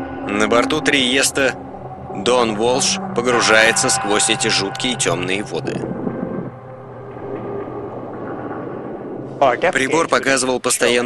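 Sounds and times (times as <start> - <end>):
faint held tones: 0.0 - 9.8
low rumbling drone: 0.0 - 10.4
narration voice: 0.3 - 5.8, 9.4 - 11.0.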